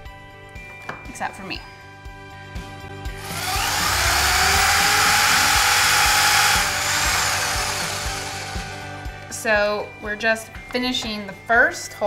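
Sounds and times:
electric drill boring into wood: 3.2 - 8.9.

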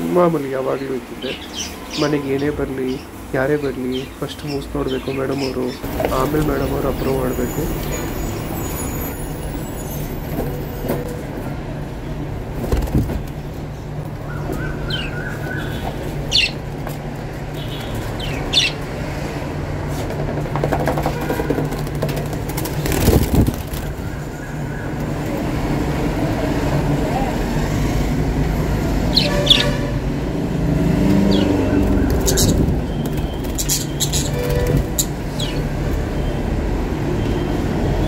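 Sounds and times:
birds chirping: 0.0 - 10.8, 12.0 - 19.4, 20.7 - 38.0.

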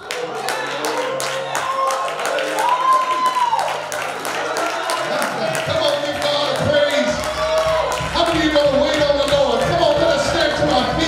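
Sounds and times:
congregation clapping a beat: 0.0 - 11.0
church music: 5.1 - 11.0.

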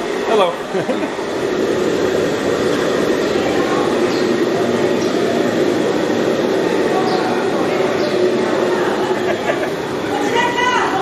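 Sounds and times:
faint voices: 0.1 - 11.0.

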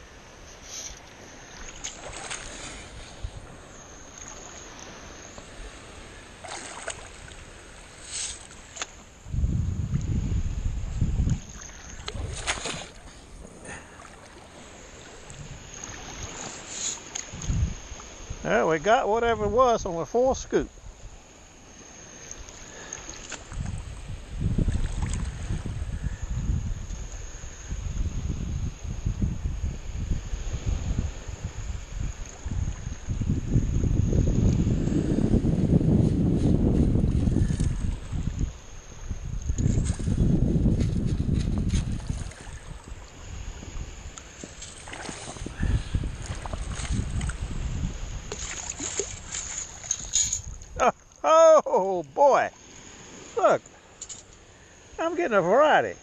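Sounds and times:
water sloshing and swishing: 0.5 - 9.3, 10.8 - 18.4, 21.0 - 26.0, 36.0 - 54.6
shells and gravel rattling: 54.0 - 54.4.

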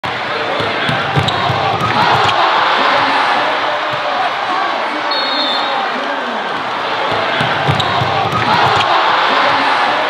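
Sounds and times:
crowd voices: 0.0 - 10.0
basketball bouncing on hardwood: 0.6 - 1.6.

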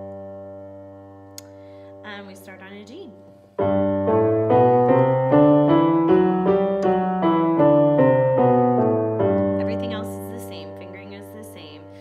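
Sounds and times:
digital piano playing a scale: 0.0 - 12.0.

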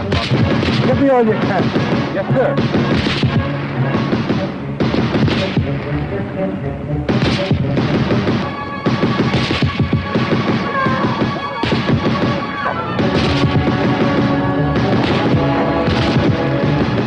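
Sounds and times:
gunfire: 0.0 - 5.8, 7.1 - 17.0
explosions: 0.0 - 5.9, 7.1 - 17.0
dramatic film score: 0.0 - 17.0.

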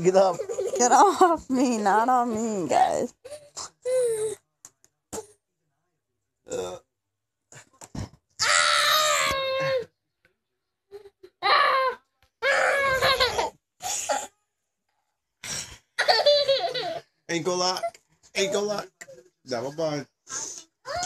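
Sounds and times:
high-pitched strained cries and squeals: 8.4 - 9.9, 10.9 - 14.3.

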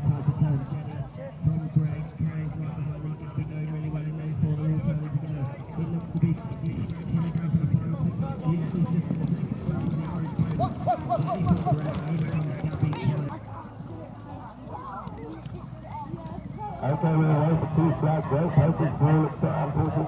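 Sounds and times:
voices calling: 5.8 - 20.0.

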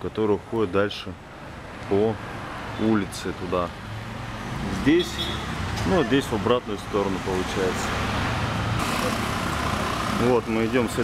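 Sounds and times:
traffic engine and road hum: 0.0 - 11.0.

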